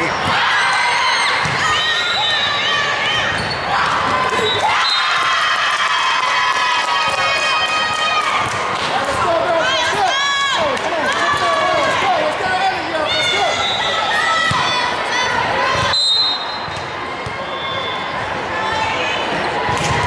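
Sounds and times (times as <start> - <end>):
players shouting: 0.0 - 20.0
volleyball hits: 19.7 - 20.0.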